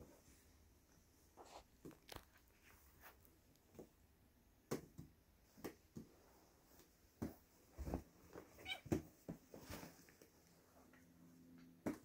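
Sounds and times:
kittens wrestling knocks and rustling: 5.7s - 11.0s.

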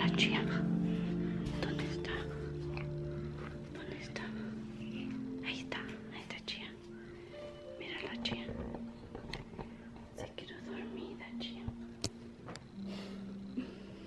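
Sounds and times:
person whispering: 0.0s - 0.7s, 1.5s - 3.0s, 3.7s - 6.8s, 10.1s - 11.7s
faint music with held notes: 0.0s - 14.0s.

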